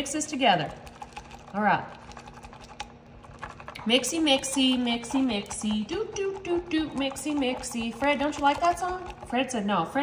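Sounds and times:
whisk clicking against glass: 0.7 - 9.6.

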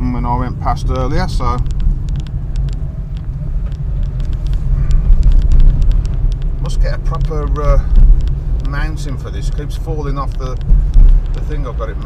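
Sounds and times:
car engine and tyres rumbling: 0.0 - 12.0
sharp clicks and knocks: 0.9 - 12.0.

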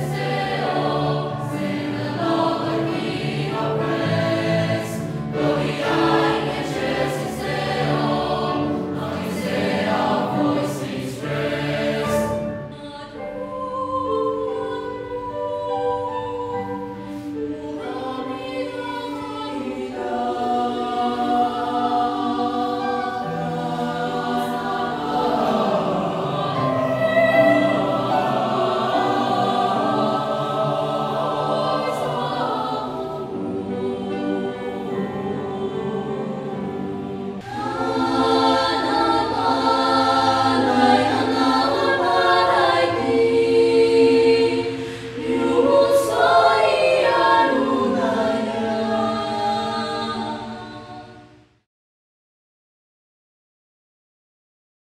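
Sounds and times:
youth choir singing in parts: 0.0 - 51.4.

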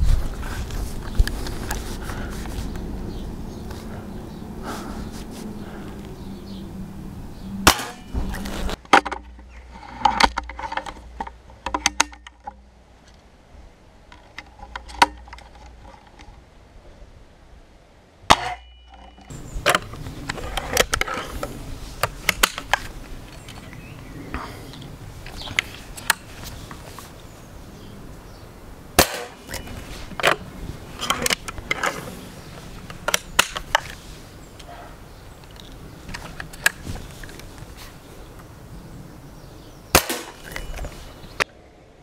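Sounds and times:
air rifle shot crack: 7.6 - 8.2, 29.0 - 29.6, 39.9 - 40.5
air rifle clicks and knocks: 8.7 - 12.6, 22.0 - 24.0, 29.0 - 32.0, 32.8 - 34.0.

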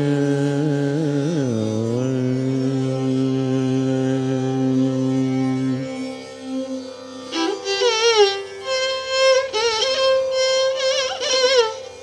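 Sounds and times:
man singing long note: 0.0 - 6.2.

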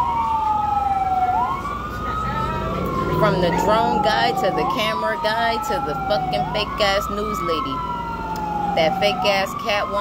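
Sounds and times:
emergency sirens wailing: 0.0 - 10.0.

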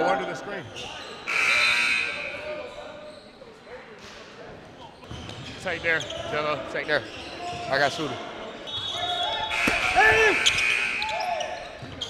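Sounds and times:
referee's whistle blast: 8.7 - 11.6.

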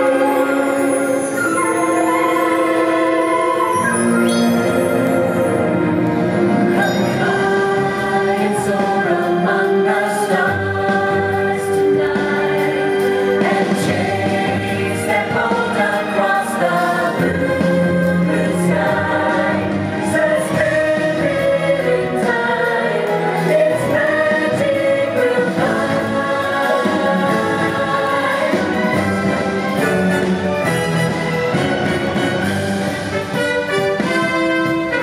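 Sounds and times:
choir singing sustained chords: 0.0 - 32.9
instrumental accompaniment: 0.0 - 35.0.

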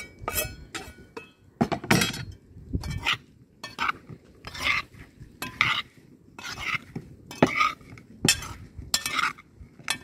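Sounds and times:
mushrooms mixed in metal pot: 0.0 - 10.0.

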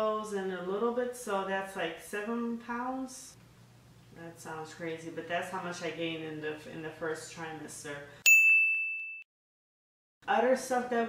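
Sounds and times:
high-pitched ding: 8.2 - 9.3.

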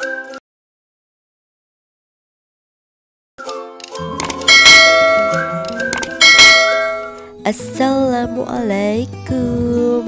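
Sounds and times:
upbeat intro music: 3.9 - 7.2
bright bell-like chime: 4.5 - 7.2.

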